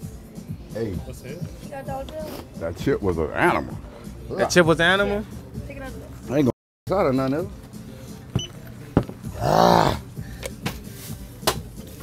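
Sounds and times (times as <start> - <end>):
man groaning: 9.3 - 10.1.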